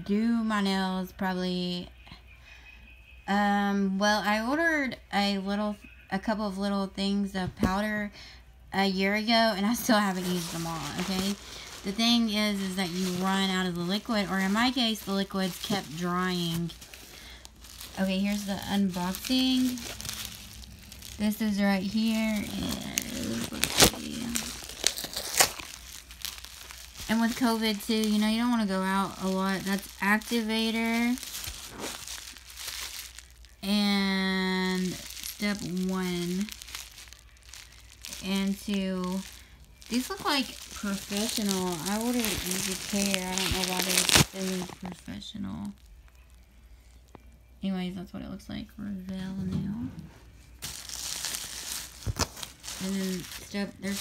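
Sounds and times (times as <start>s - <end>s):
bubble wrap crackles: 8.8s - 47.6s, 50.2s - 54.0s
bubble wrap crinkling: 8.8s - 47.6s, 50.2s - 54.0s.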